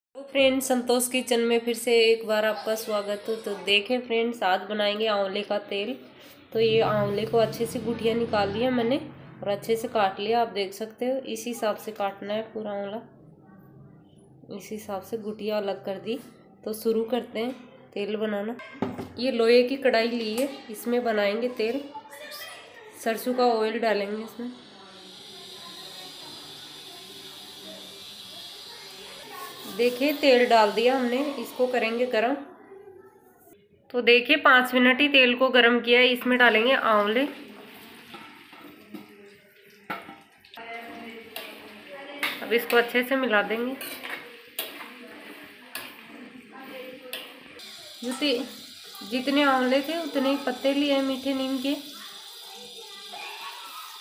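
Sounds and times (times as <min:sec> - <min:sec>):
oil sizzling and bubbling: 0:23.0 - 0:32.4, 0:36.1 - 0:54.0.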